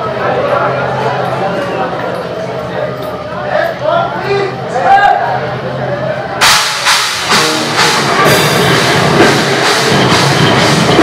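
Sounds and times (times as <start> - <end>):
drum and cymbal hits: 6.4 - 11.0
electric guitars: 6.4 - 11.0.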